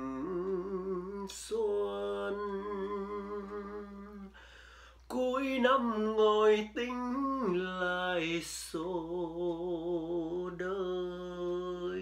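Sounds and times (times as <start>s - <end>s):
man singing a long note: 0.0s - 4.4s.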